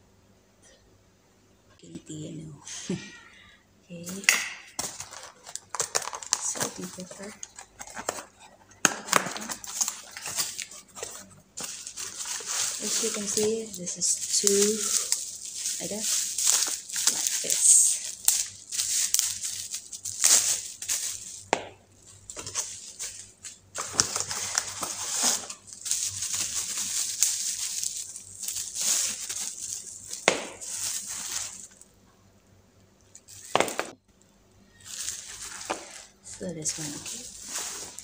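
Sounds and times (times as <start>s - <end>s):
bubble wrap crinkling: 3.9s - 31.9s, 33.1s - 34.0s, 34.6s - 38.0s.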